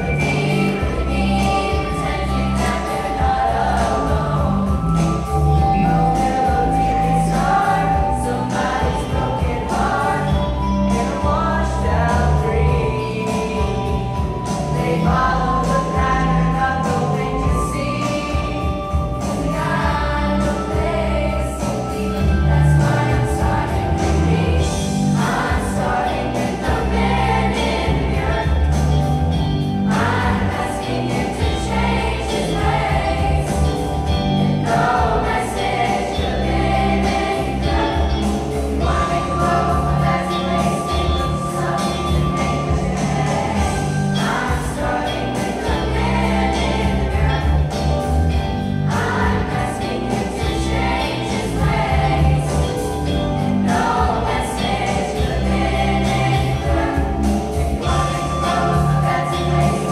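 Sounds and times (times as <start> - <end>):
instrumental accompaniment with bass: 0.0 - 59.9
youth choir singing: 0.0 - 59.9.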